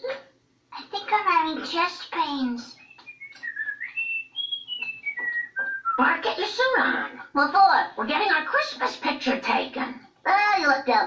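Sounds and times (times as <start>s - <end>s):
person whistling through speaker: 2.8s - 6.0s.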